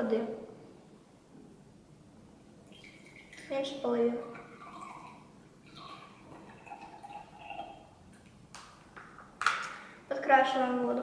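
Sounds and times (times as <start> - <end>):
water poured into glass: 2.6 - 3.6, 4.2 - 8.3.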